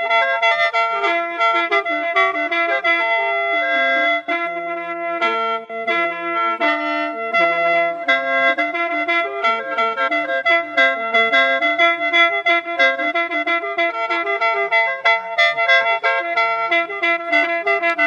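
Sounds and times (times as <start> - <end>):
mouth organ melody: 0.0 - 18.0.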